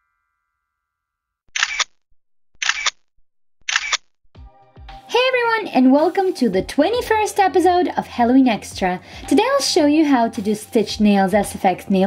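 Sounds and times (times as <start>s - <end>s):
background music: 4.4s - 12.0s.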